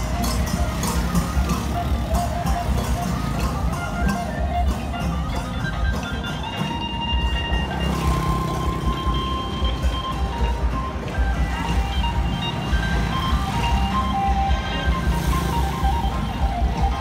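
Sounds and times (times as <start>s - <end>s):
motorbikes passing: 0.0s - 17.0s
street traffic: 0.0s - 17.0s.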